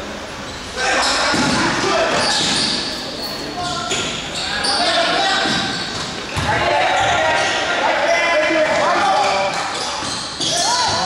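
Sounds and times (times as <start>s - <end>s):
basketball bouncing on court: 5.4s - 7.5s, 8.6s - 11.0s.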